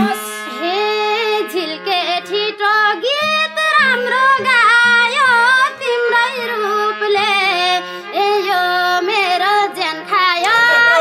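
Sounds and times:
woman singing high ornamented phrases: 0.0 - 0.4
held drone note: 0.0 - 0.6.

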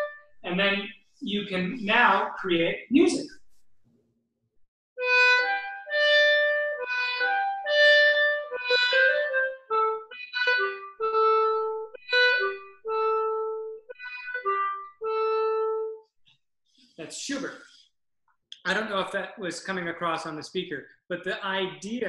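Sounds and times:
clarinet melody: 0.0 - 0.4, 5.0 - 16.1.

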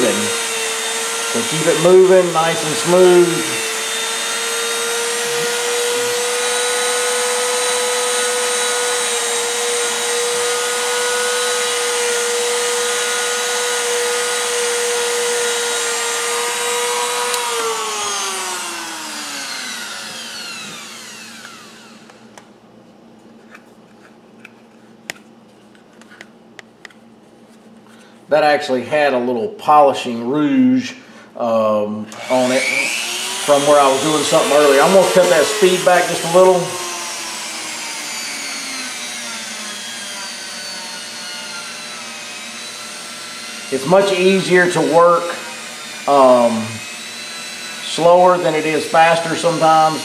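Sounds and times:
rotary tool high-pitched whine: 0.0 - 22.4, 32.1 - 50.0.

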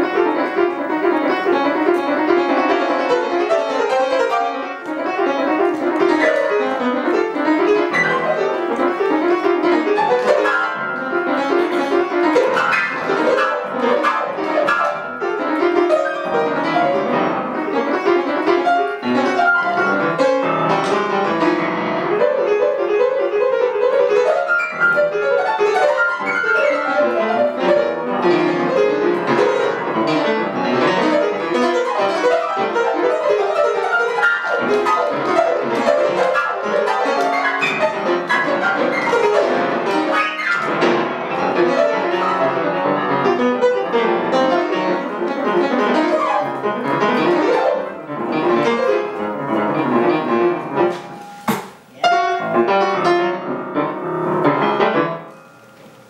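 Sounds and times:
solo grand piano: 0.0 - 56.0.

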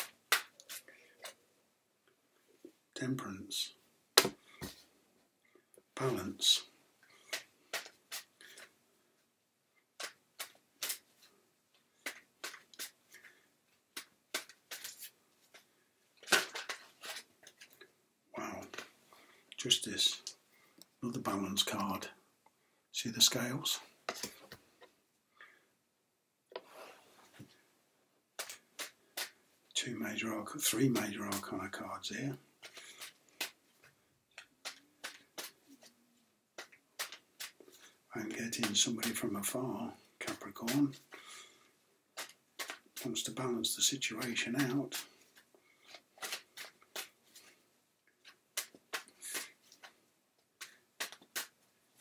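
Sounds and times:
cards being shuffled: 0.0 - 1.4, 7.2 - 8.7, 10.0 - 11.4, 12.0 - 17.8, 28.4 - 29.4, 32.6 - 36.0, 36.6 - 39.5, 42.2 - 47.6, 48.2 - 50.0, 50.6 - 52.0.

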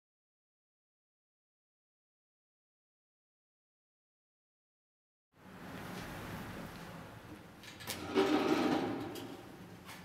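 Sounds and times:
scrape on floor: 8.0 - 9.2.

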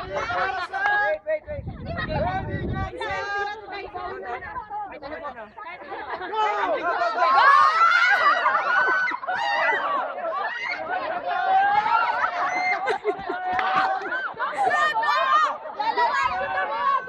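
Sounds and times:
young people shouting and laughing: 0.0 - 17.0.

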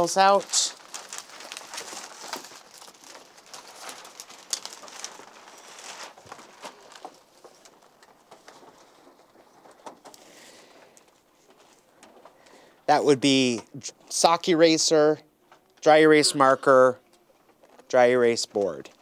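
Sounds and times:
clicks taps and rustles: 0.8 - 12.6.

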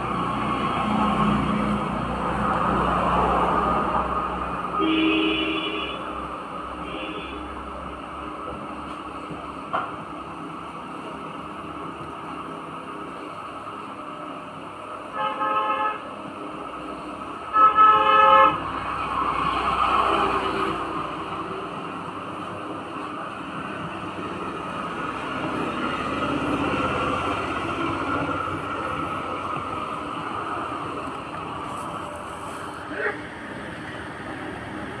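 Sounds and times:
passing vehicle noise: 0.0 - 35.0.

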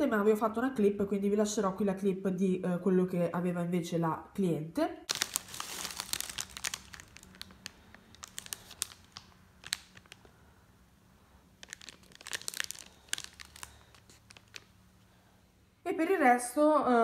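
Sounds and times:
cellophane bag crinkling: 5.1 - 10.4, 11.5 - 14.8.

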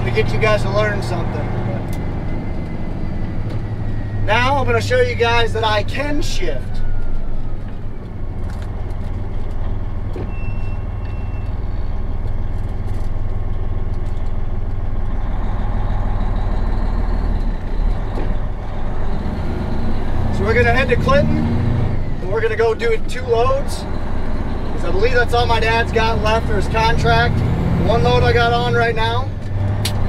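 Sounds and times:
diesel truck engine running: 0.0 - 30.0.

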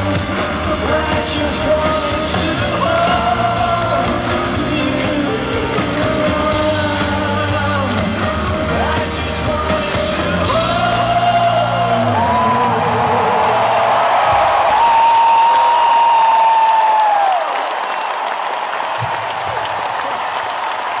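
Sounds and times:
live rock band: 0.0 - 13.7
crowd cheering and applauding: 0.0 - 21.0.

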